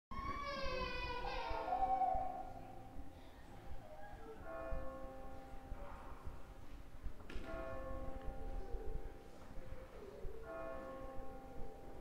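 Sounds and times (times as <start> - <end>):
church bell ringing: 4.3 - 12.0.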